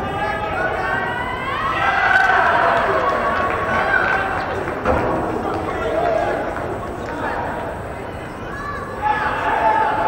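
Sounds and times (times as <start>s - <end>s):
people calling and shouting: 0.0s - 10.0s.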